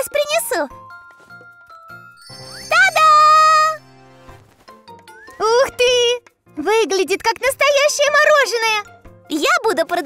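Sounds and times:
cartoon reveal jingle: 2.1s - 4.3s.

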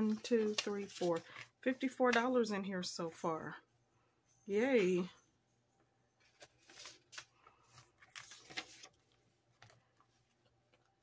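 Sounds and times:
paper cash rustling: 0.0s - 1.6s, 6.2s - 11.0s.

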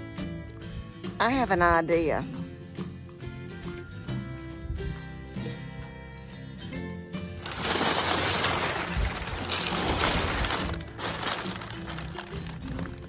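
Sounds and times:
paper crinkling and rustling: 7.4s - 13.0s.

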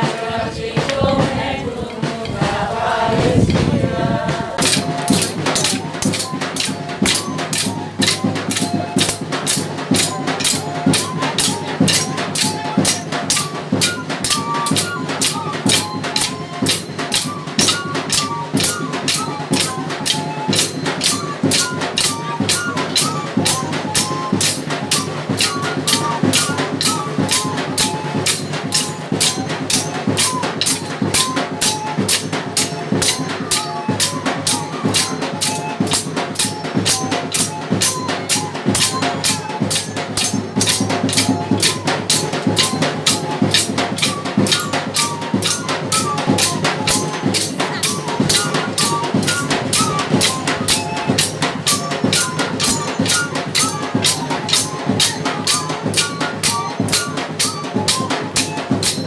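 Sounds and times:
drums and jingling percussion: 0.0s - 59.0s.

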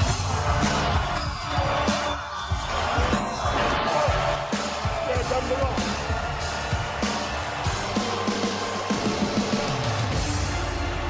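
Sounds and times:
drum kit beat: 0.0s - 11.0s
entrance theme music: 0.0s - 11.0s.

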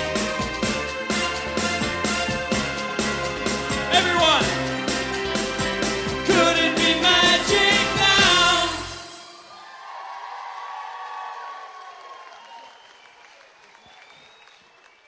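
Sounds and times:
live pop band with singing: 3.9s - 9.6s
audience cheering and applauding: 7.7s - 15.0s.

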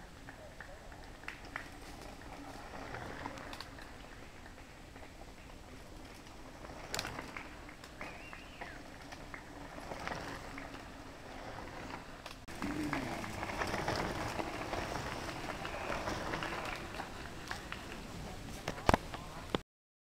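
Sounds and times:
bike tyres crunching over stones: 0.2s - 19.4s.

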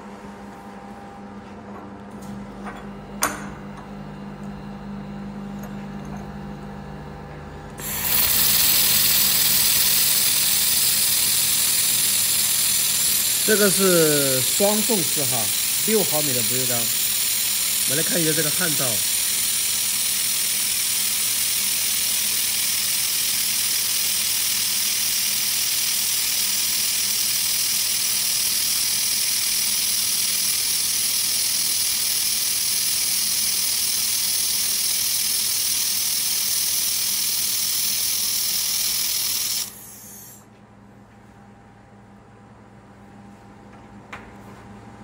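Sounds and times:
laser welder hissing: 7.8s - 40.4s.

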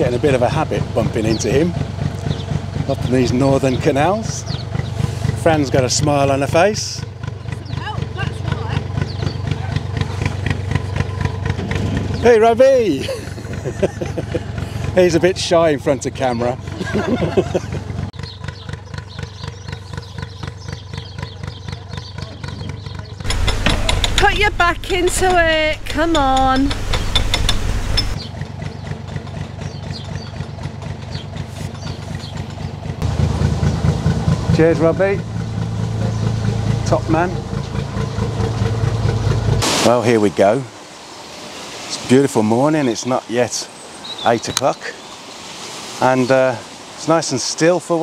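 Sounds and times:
diesel engine idling: 0.0s - 41.2s
voice fragments: 23.3s - 26.7s.

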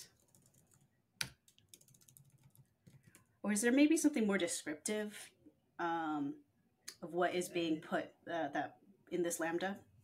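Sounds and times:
computer keyboard typing: 0.1s - 3.3s.

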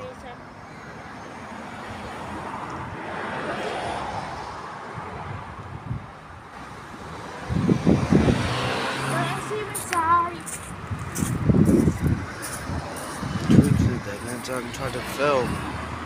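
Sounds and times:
vehicle passing: 0.2s - 16.0s.

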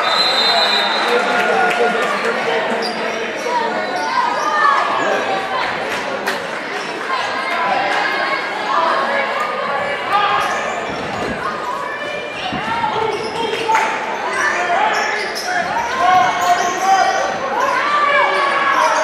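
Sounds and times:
voices and shouts: 0.0s - 19.0s.

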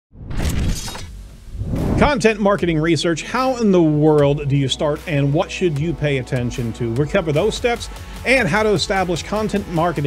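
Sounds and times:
shattering crash: 0.2s - 1.2s
swelling sound effect: 0.2s - 2.3s
music: 1.1s - 10.0s.

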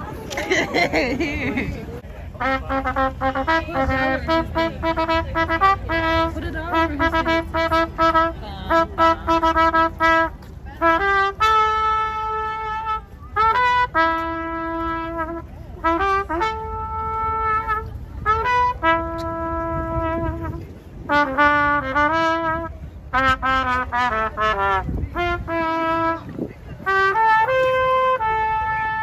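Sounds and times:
solo trumpet melody: 2.3s - 29.0s.

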